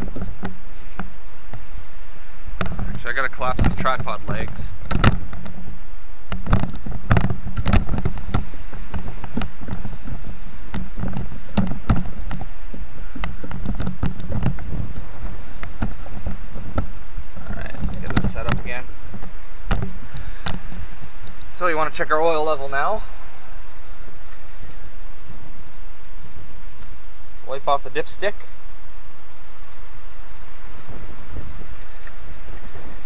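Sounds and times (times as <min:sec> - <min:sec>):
steady background noise: 0:00.0 - 0:33.0.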